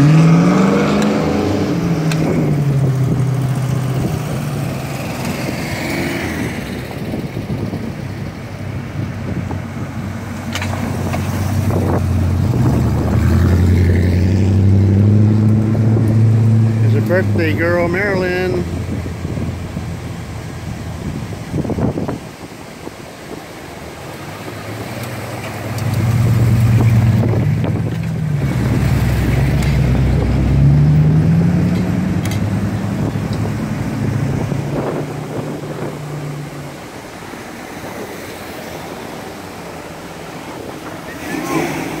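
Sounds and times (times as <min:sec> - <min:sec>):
car engine running and revving: 0:00.0 - 0:42.0.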